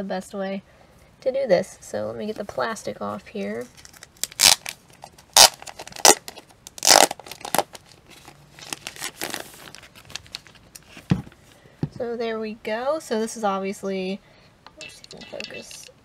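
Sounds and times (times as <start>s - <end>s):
plastic wrap ripping and crinkling: 3.7s - 11.1s.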